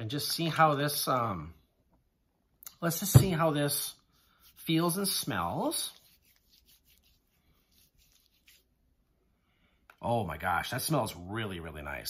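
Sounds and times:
hands rubbing in lotion: 4.3s - 8.8s.

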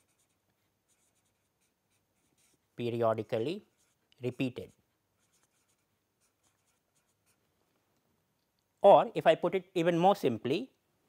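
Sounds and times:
marker writing on paper: 0.0s - 2.6s, 3.4s - 7.4s.

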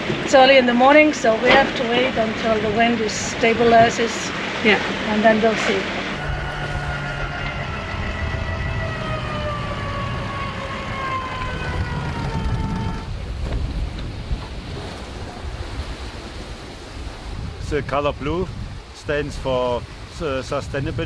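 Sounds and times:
wind and water rushing: 0.0s - 21.0s
falling multi-pitch whine: 5.9s - 13.2s.

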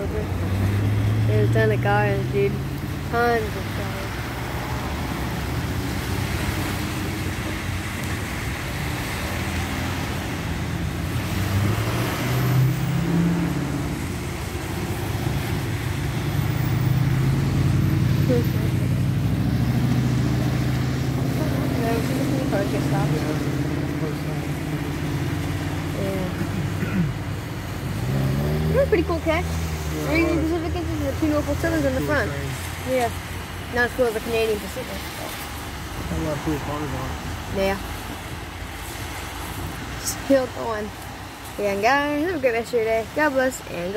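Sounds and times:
car engines passing: 0.0s - 43.9s.

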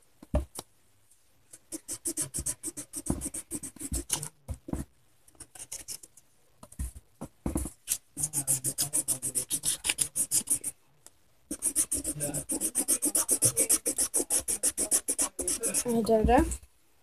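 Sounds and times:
crayon scribbling on paper: 1.6s - 4.3s, 8.2s - 10.8s, 11.5s - 16.5s.

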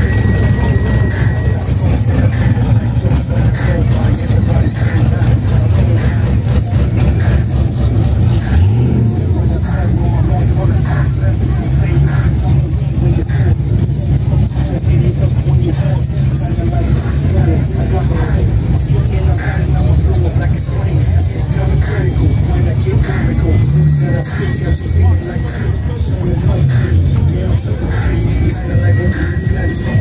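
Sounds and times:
background voices: 0.0s - 30.0s
music: 0.0s - 30.0s
people talking: 0.0s - 30.0s
pickup truck engine rumbling: 0.0s - 30.0s.

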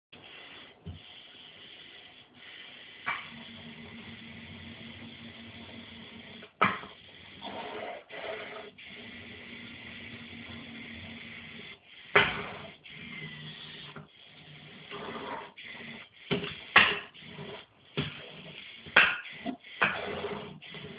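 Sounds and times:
robot drive motors whirring: 2.8s - 20.9s.

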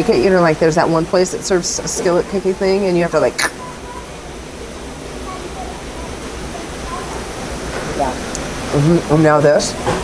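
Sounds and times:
faint distant voices: 0.0s - 10.0s
room ambience hiss: 0.0s - 10.0s.

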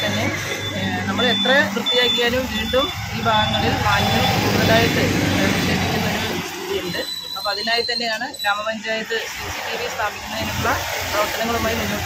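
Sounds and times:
short high-pitched beeps: 0.0s - 4.9s, 6.0s - 8.8s
vehicle engine hum: 0.0s - 7.4s
woman speaking: 0.0s - 12.0s.

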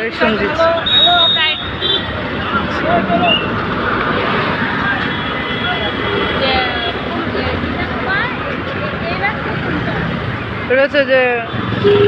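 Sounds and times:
people's voices: 0.0s - 12.0s
road traffic passing: 0.0s - 12.0s.

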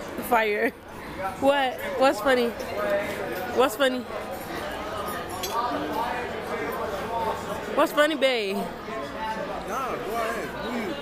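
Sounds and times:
restaurant chatter: 0.0s - 11.0s.

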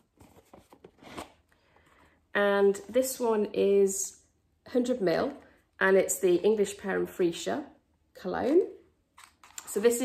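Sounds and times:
cardboard box rustling: 0.0s - 1.4s.

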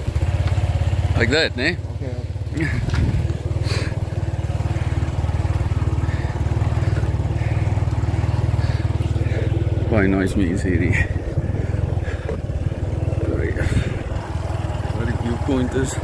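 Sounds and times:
motor scooter engine droning: 0.0s - 16.0s.

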